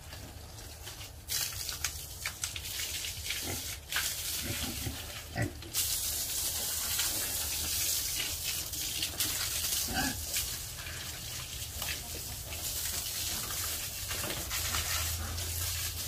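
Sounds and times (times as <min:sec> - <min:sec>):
water spraying from hose: 0:00.0 - 0:16.0
pigs calling: 0:09.6 - 0:11.2.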